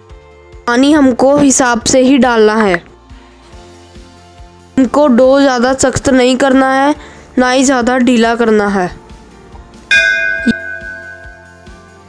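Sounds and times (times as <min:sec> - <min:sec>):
bell-like chime ringing: 0:09.9 - 0:11.9.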